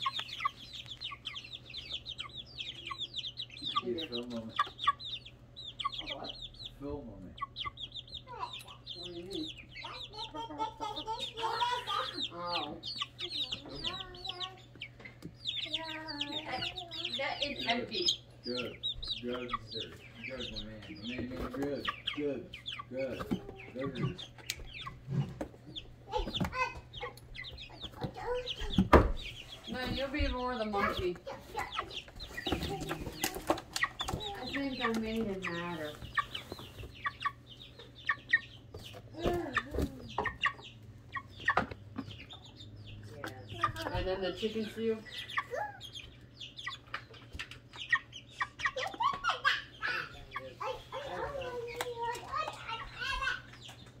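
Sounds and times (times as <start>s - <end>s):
baby chicks peeping: 0.0s - 54.0s
people talking: 3.6s - 4.7s, 5.8s - 7.5s, 8.3s - 14.7s, 15.6s - 25.3s, 27.8s - 29.0s, 29.7s - 33.4s, 34.1s - 36.1s, 39.1s - 40.6s, 43.0s - 45.8s, 48.6s - 53.5s.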